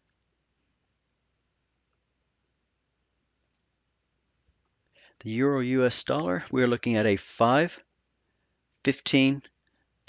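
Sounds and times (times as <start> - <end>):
computer mouse double click: 3.4 - 3.6.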